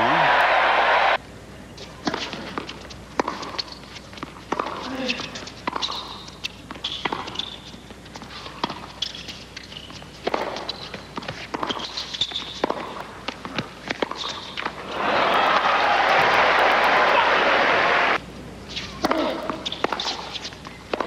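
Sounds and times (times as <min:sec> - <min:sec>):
tennis shoes squeaking: 0:01.7 - 0:15.6, 0:18.6 - 0:21.0
ball bouncing on hard court: 0:02.0 - 0:07.6, 0:08.6 - 0:14.8, 0:19.0 - 0:21.0
racket striking tennis ball: 0:02.0 - 0:07.6, 0:10.2 - 0:14.8, 0:18.8 - 0:21.0.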